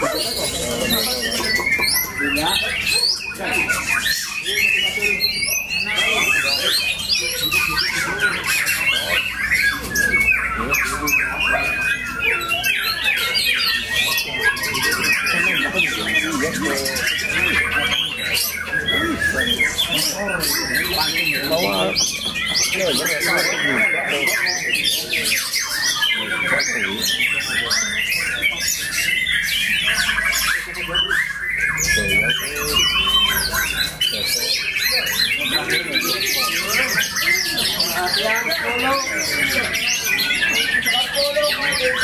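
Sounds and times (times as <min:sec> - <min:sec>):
birds singing: 0:00.0 - 0:42.0.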